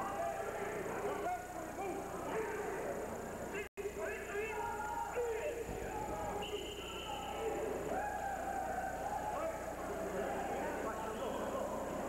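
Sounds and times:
voices in an arena: 0:00.0 - 0:12.0.

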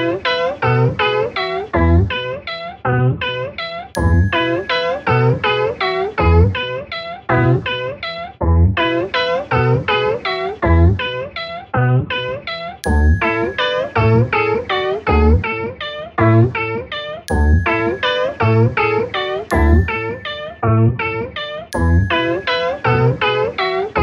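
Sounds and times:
low bass thump: 0:17.3 - 0:17.6, 0:19.5 - 0:19.9.

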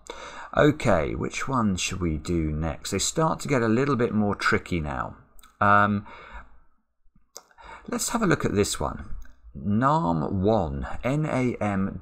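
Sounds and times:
in-breath: 0:00.0 - 0:00.6, 0:06.0 - 0:06.7, 0:07.5 - 0:07.9.

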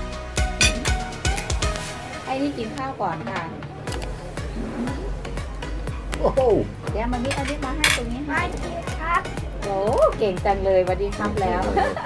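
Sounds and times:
plates and spoons clinking: 0:00.6 - 0:01.0, 0:07.2 - 0:08.2.

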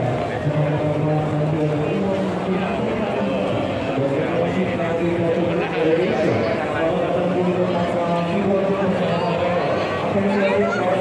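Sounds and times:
dense crowd chatter: 0:00.0 - 0:11.0.

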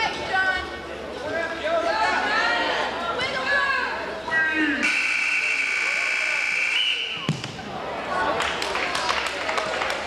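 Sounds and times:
crowd voices: 0:00.0 - 0:10.0
scoreboard buzzer tone: 0:04.8 - 0:06.8.

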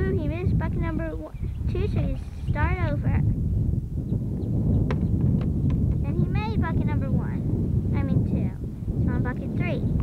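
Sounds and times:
voices: 0:00.0 - 0:03.3, 0:06.0 - 0:10.0
wind buffeting microphone: 0:00.0 - 0:10.0.

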